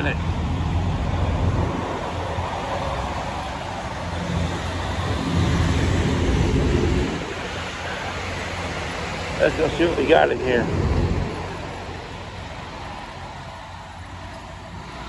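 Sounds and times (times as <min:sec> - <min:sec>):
vehicle traffic: 0:00.0 - 0:15.0
wind on microphone: 0:00.2 - 0:13.6.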